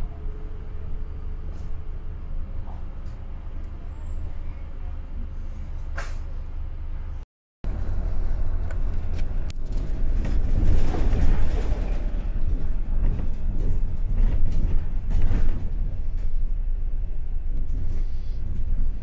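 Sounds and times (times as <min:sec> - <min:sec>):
bus engine and road rumble: 0:00.0 - 0:19.0.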